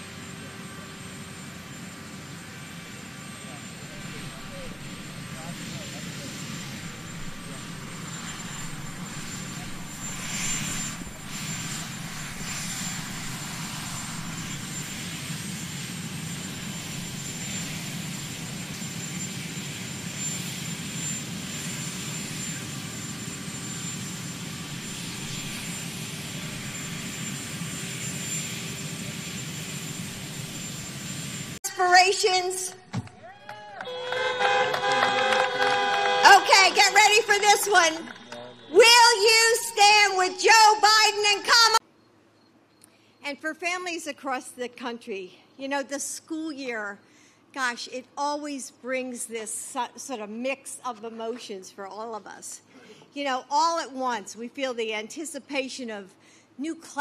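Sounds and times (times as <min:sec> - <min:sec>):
aircraft engine whine and rumble: 0:00.0 - 0:33.2, 0:34.7 - 0:41.8.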